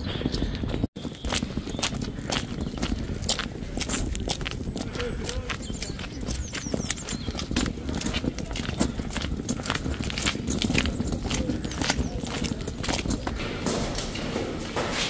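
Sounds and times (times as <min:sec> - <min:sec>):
footsteps on brick paving: 0:00.0 - 0:15.0.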